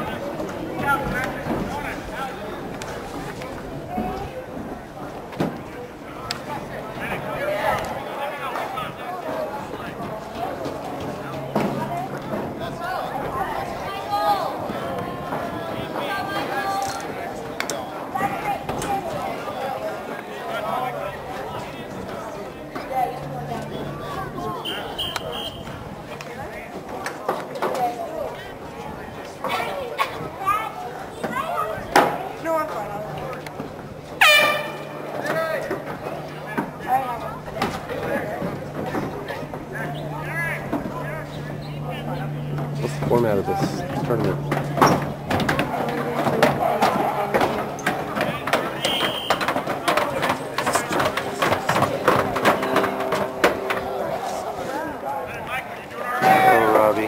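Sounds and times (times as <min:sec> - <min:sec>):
overlapping voices: 0:00.0 - 0:57.0
people shouting and calling out: 0:05.7 - 0:57.0.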